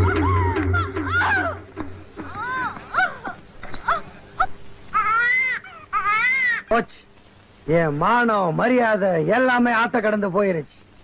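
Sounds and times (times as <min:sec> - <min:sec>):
faint steady hum: 0:00.0 - 0:11.0
high-pitched whimpering cries: 0:02.3 - 0:06.7.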